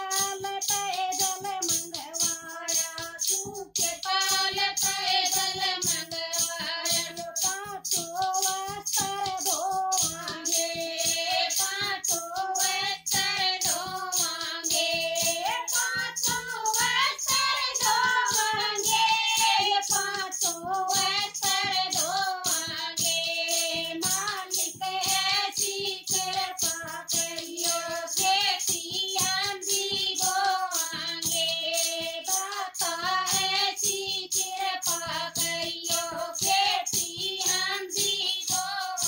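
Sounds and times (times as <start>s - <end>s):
hand-held clappers: 0.0s - 39.0s
women singing devotional song: 0.0s - 39.0s.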